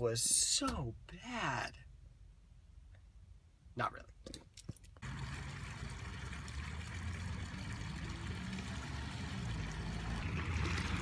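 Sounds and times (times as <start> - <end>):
fountain water trickling and splashing: 5.0 - 11.0.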